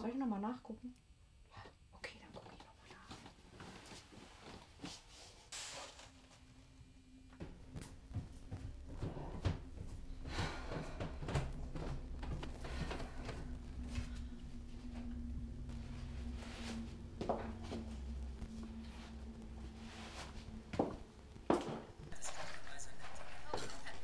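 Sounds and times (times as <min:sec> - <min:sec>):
low steady hum: 0:00.0 - 0:24.0.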